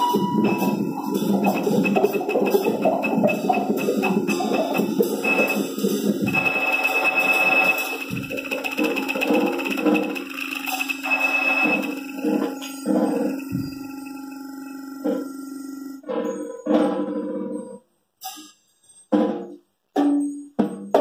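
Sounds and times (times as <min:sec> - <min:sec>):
high held tone: 0:00.0 - 0:16.0
pulsing mid tones: 0:00.0 - 0:16.0.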